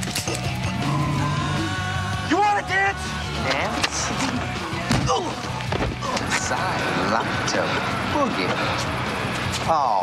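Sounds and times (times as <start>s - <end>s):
music with long held notes: 0.0s - 5.7s.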